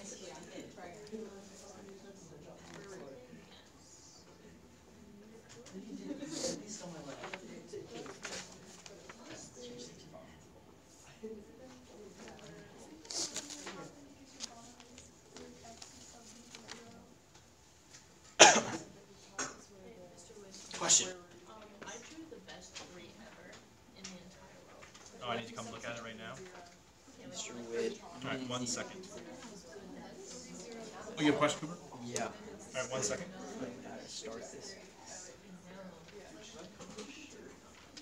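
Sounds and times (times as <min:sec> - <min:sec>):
faint voices talking quietly: 0:00.0 - 0:38.0
person coughing: 0:18.4 - 0:19.6.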